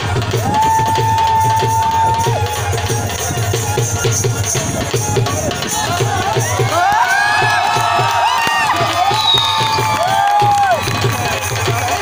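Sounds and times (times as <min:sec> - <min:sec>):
crowd shouting and cheering: 0:00.0 - 0:12.0
dhol drum beating: 0:00.0 - 0:12.0
whoops: 0:00.4 - 0:02.5, 0:06.3 - 0:11.9.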